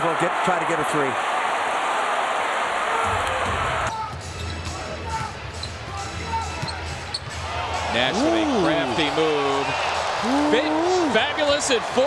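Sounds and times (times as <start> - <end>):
loud arena crowd: 0.0 - 12.0
sneakers squeaking: 3.9 - 7.4.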